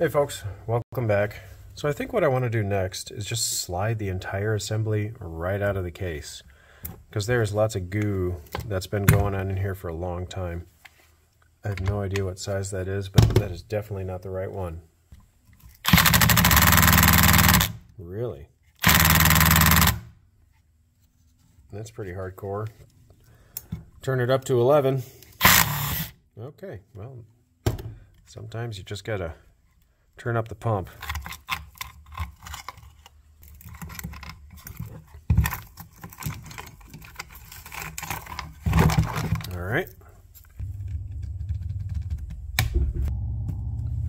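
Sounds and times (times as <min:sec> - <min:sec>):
steady low hum: 0:39.9 - 0:44.0
sharp knock: 0:40.6 - 0:44.0.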